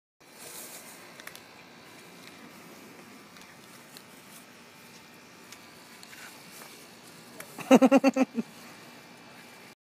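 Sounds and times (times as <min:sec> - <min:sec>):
light clicks and scrapes: 0:03.3 - 0:07.5.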